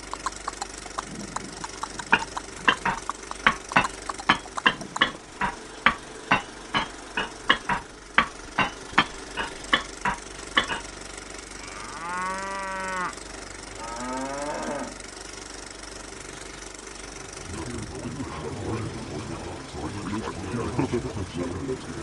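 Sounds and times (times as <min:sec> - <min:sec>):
sharp knocks: 0:00.0 - 0:10.9
cow mooing: 0:11.6 - 0:13.2, 0:13.8 - 0:15.0.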